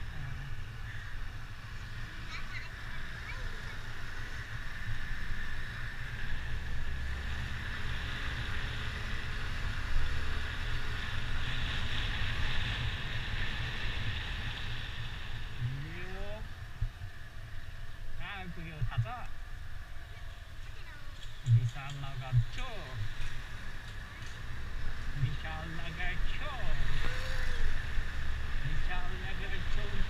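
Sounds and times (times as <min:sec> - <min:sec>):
voices: 0:00.0 - 0:04.8, 0:15.6 - 0:30.0
wind buffeting microphone: 0:00.0 - 0:26.0.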